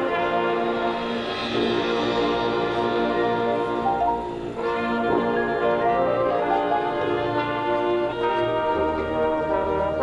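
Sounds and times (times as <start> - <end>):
marching band brass chords: 0.0 - 10.0.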